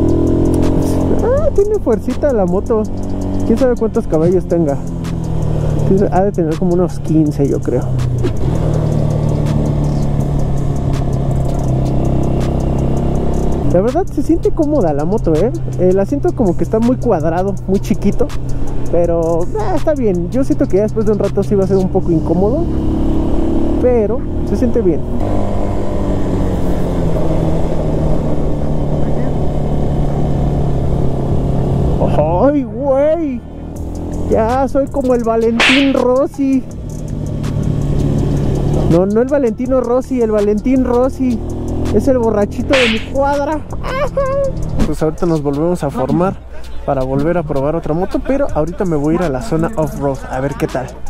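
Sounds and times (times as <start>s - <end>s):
motorcycle engine running: 0.0s - 13.8s.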